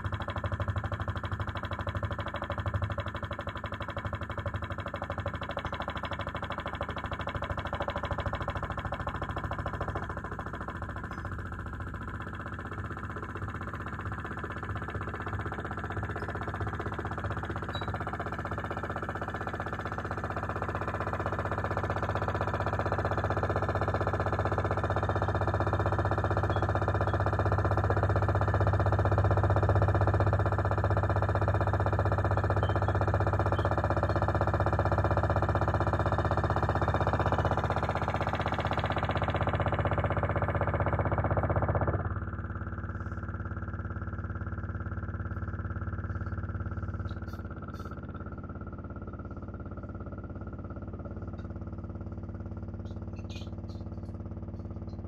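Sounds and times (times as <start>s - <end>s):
electronic drone of held tones: 17.6s - 18.0s, 32.5s - 34.2s.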